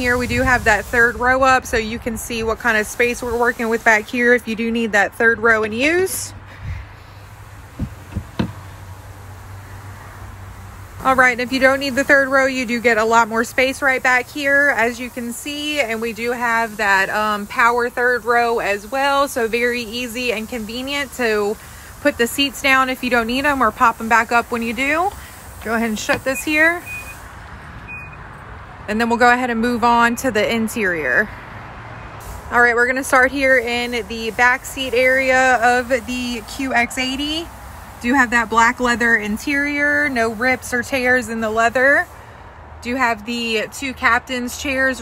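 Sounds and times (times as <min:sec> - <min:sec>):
short knocks: 0:07.8 - 0:08.7
power liftgate closing: 0:07.8 - 0:08.8, 0:25.7 - 0:27.2
short high warning beeps: 0:26.1 - 0:27.2, 0:27.9 - 0:28.2.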